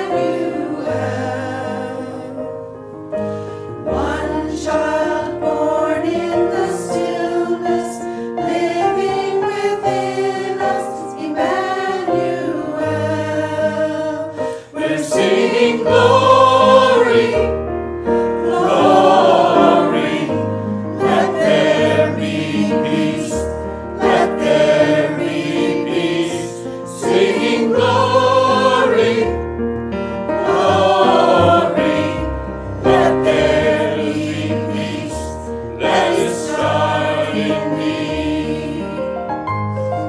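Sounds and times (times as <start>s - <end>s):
digital piano accompaniment: 0.0s - 40.0s.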